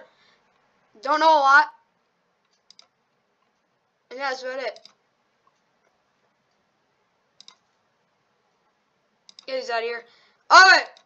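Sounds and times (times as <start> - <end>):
computer mouse clicks: 2.4 - 3.7, 4.7 - 6.6, 7.4 - 7.8, 9.2 - 9.6.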